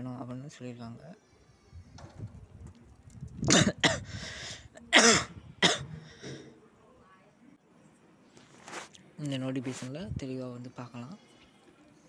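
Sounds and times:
man coughing: 0:03.5 - 0:04.1, 0:04.9 - 0:06.0
breath: 0:04.0 - 0:04.7.

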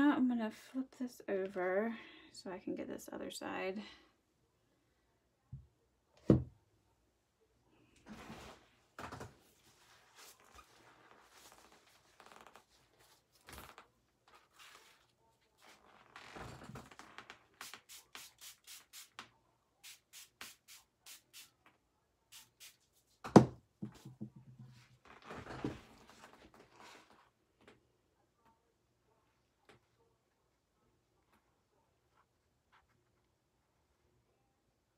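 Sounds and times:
paper towels rustling: 0:08.1 - 0:16.0
spray bottle spritzes: 0:17.6 - 0:19.2, 0:19.8 - 0:21.5, 0:22.3 - 0:22.8
knock on table: 0:23.2 - 0:24.4.

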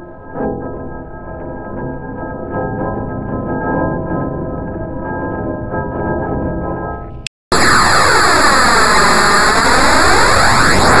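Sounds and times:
harsh electronic noise with sweep: 0:07.1 - 0:11.0.

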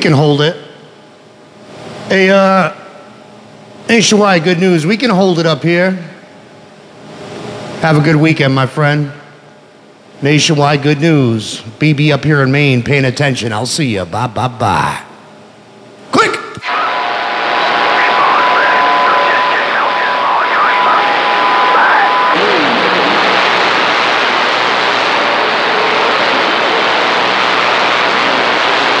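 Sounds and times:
loud steady radio static: 0:16.6 - 0:29.0
radio transmit burst: 0:16.6 - 0:29.0.

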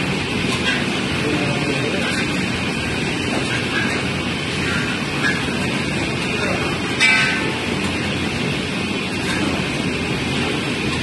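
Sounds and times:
stirring machine running: 0:00.0 - 0:11.0.

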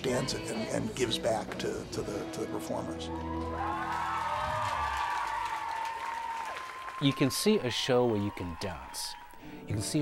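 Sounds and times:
audience applauding and cheering: 0:02.8 - 0:09.6.

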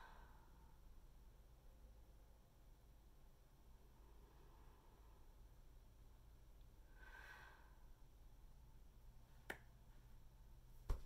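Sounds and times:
soft breath out: 0:00.0 - 0:00.9, 0:06.8 - 0:08.0.

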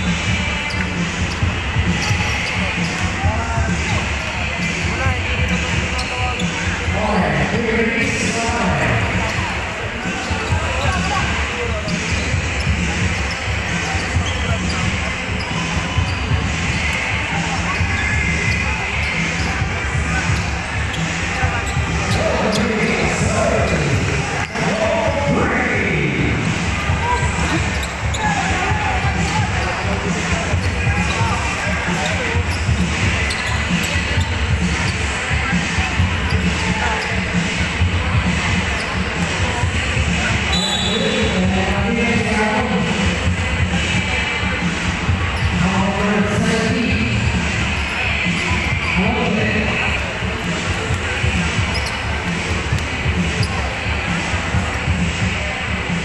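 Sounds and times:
crowd voices: 0:00.0 - 0:56.0.

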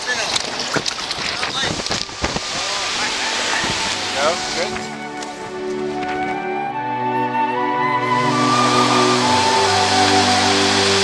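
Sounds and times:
wind buffeting microphone: 0:00.0 - 0:05.6
water noise from kayak: 0:00.0 - 0:06.1, 0:08.2 - 0:11.0
background music: 0:02.4 - 0:11.0.

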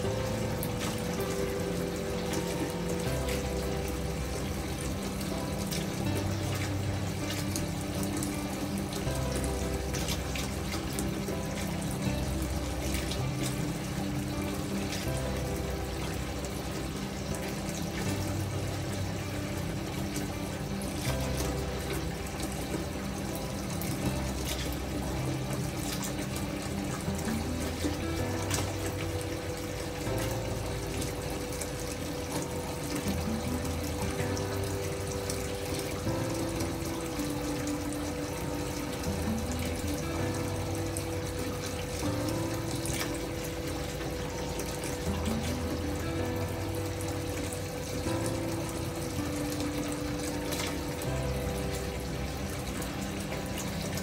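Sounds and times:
calm background music: 0:00.0 - 0:54.0
water running into a bathtub: 0:00.0 - 0:54.0.

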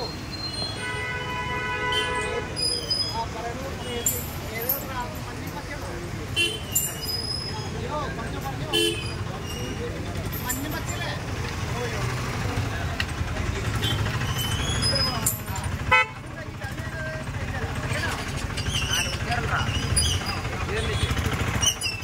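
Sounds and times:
traffic engine rumble: 0:00.0 - 0:22.0
vehicle horn toots: 0:00.8 - 0:02.6, 0:08.7 - 0:09.2, 0:15.9 - 0:16.2.

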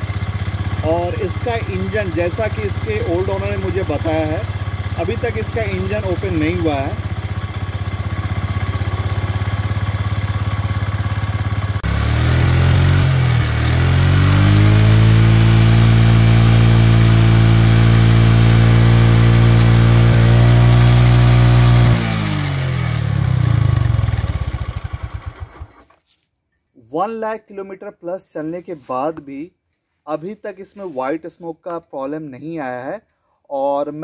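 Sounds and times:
scooter engine idling and revving: 0:00.0 - 0:25.9.

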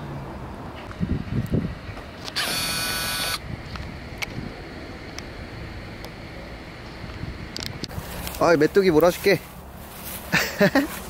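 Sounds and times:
outdoor background noise: 0:00.0 - 0:11.0
loud buzzing rattle: 0:02.2 - 0:04.3.

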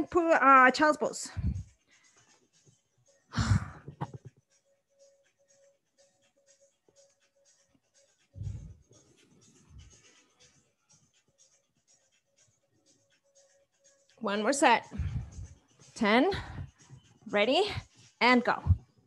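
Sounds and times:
soft low thumps: 0:01.3 - 0:01.7, 0:08.4 - 0:08.8, 0:14.9 - 0:15.6, 0:18.5 - 0:18.8.

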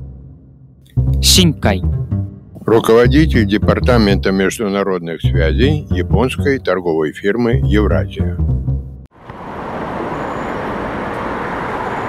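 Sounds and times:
city traffic hum: 0:08.2 - 0:12.0.

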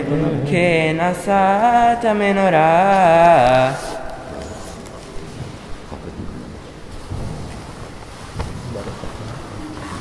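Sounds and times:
low rumbling thumps: 0:04.2 - 0:09.4.

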